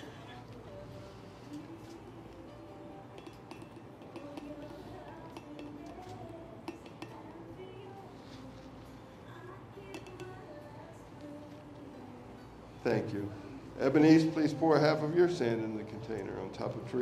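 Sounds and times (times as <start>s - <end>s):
soft background music: 0.0s - 17.0s
glass clinks: 3.1s - 7.4s, 9.8s - 10.5s.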